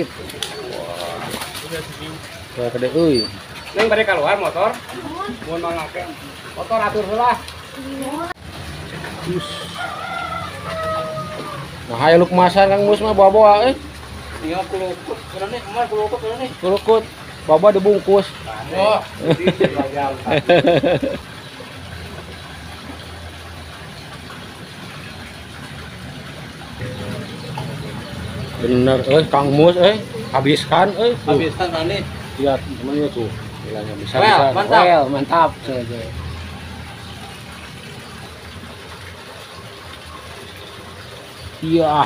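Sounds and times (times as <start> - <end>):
rooster crowing: 9.3 - 11.8.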